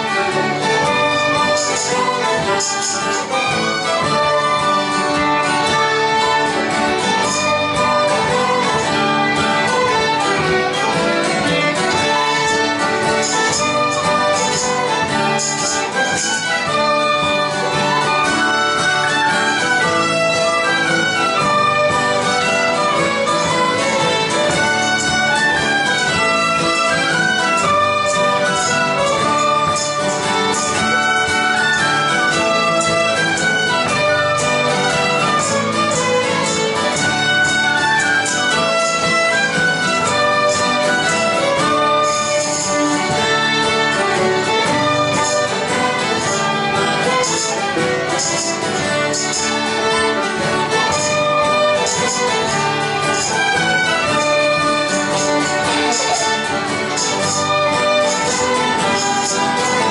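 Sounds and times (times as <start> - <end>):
banjo: 0.0 - 59.9
fiddles playing melody: 0.0 - 59.9
guitar: 0.0 - 59.9
piano accordion: 0.0 - 59.9.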